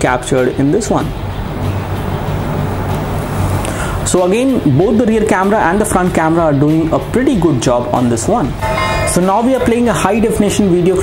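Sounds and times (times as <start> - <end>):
noisy hiss: 0.0 - 11.0.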